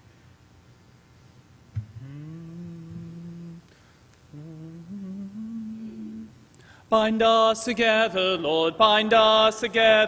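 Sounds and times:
man humming: 1.8 - 6.5.

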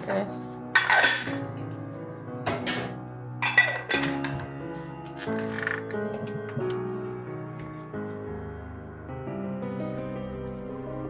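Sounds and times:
background music: 0.0 - 11.0
china cups and kettle clinking: 0.8 - 1.5, 2.5 - 4.4.

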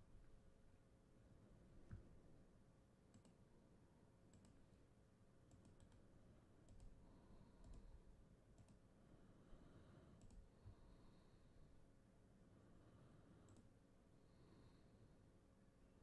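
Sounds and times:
computer mouse clicks: 3.1 - 3.5, 4.3 - 4.7, 5.4 - 8.9, 10.1 - 10.5, 13.4 - 13.8.

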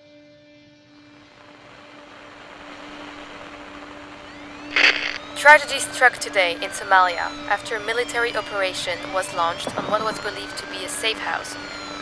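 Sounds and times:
engine-like drone with rushing: 1.6 - 12.0.

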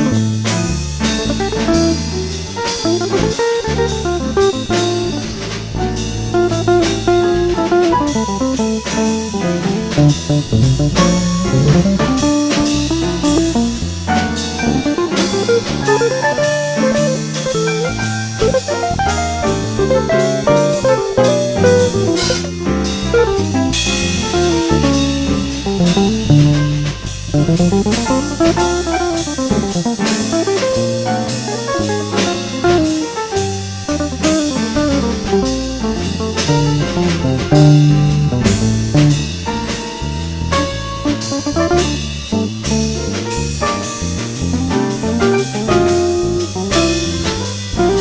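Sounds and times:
bass: 0.0 - 48.0
drum kit: 0.0 - 48.0
jazz guitar melody: 0.0 - 48.0.

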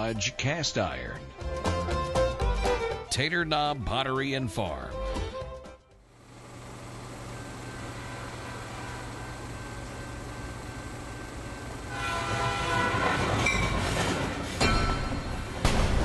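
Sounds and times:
multi-tone train horn: 7.8 - 9.8, 11.6 - 14.5
train rumbling: 11.6 - 15.6.

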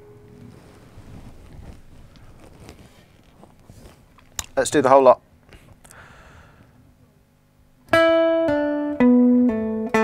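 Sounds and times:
guitar chord ringing: 0.0 - 0.7, 7.9 - 10.0
handling noise rustling: 0.2 - 4.9.

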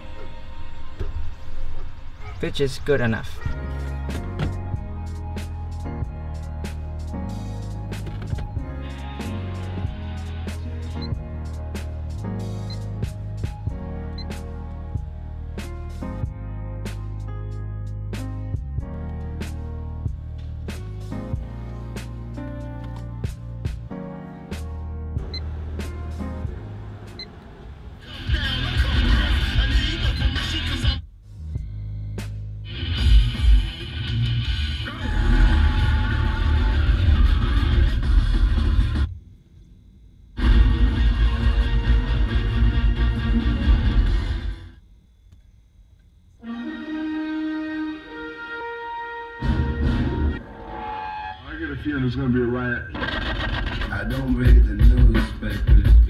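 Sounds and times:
music with voices from car stereo: 0.0 - 39.2, 40.4 - 44.7, 51.4 - 56.0.

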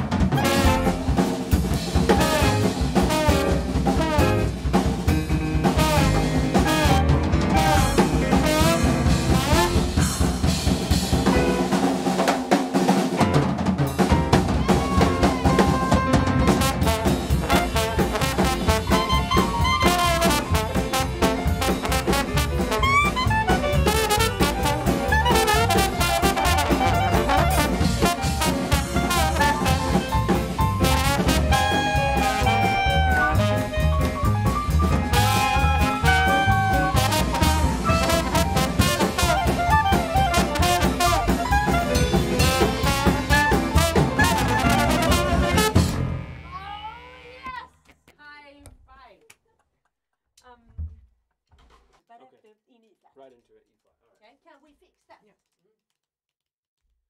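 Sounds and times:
trombone: 0.0 - 10.3, 15.5 - 46.4
double bass: 0.0 - 11.5, 14.9 - 46.9
piano: 0.0 - 46.3
busy drum kit: 0.0 - 46.5
clarinet: 14.7 - 20.7, 21.6 - 30.1, 30.8 - 47.6.

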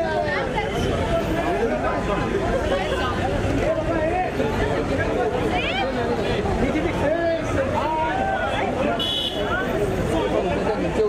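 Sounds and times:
overlapping crowd chatter: 0.0 - 11.0.

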